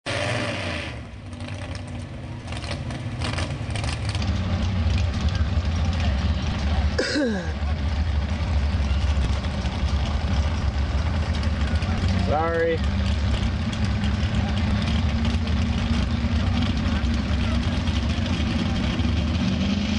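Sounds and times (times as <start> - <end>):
pickup truck engine under load: 0.1 - 19.9.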